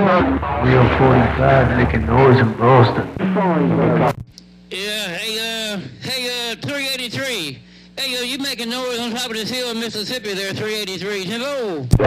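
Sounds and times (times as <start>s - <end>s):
faint radio static: 0.0s - 12.0s
garbled radio transmission: 0.0s - 12.0s
steady hum tone: 0.0s - 12.0s.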